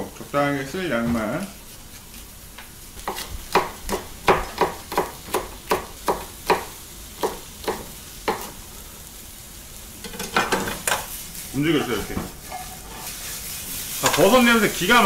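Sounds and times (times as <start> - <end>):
knife chopping on cutting board: 3.0 - 8.6.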